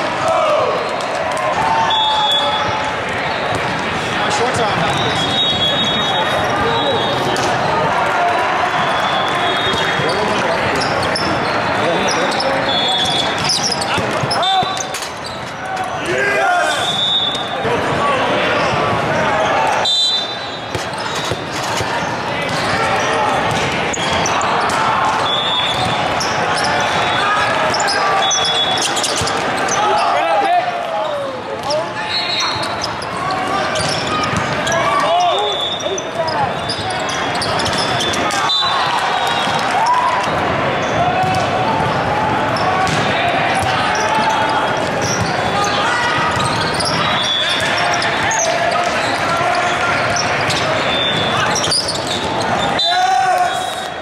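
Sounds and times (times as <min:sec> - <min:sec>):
crowd hubbub: 0:00.0 - 0:54.0
players shouting: 0:00.0 - 0:54.0
volleyball hits: 0:13.0 - 0:15.0, 0:20.6 - 0:29.6, 0:37.6 - 0:45.6.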